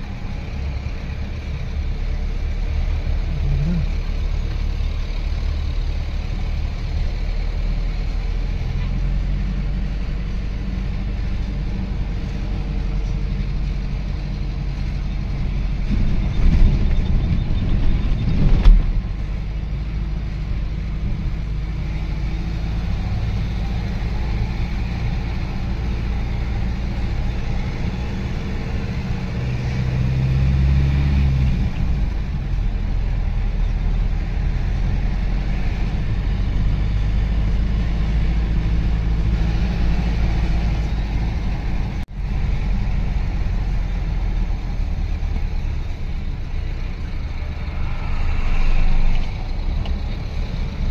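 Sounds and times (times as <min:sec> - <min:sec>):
engine and road rumble in cabin: 0:00.0 - 0:50.9
trucks passing: 0:00.0 - 0:50.9.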